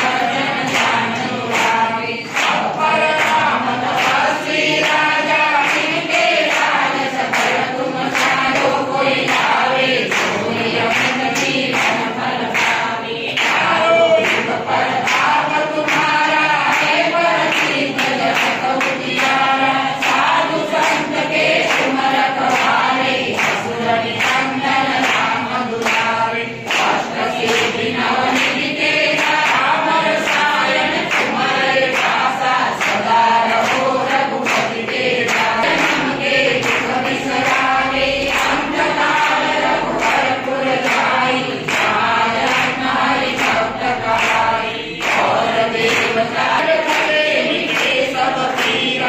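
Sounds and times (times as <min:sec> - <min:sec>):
congregation singing: 0:00.0 - 0:49.0
hands clapping in rhythm: 0:00.0 - 0:49.0.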